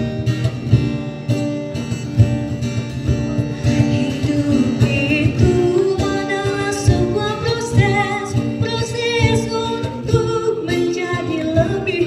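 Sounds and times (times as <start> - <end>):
acoustic guitar accompaniment: 0.0 - 12.0
person singing with vibrato: 3.5 - 12.0.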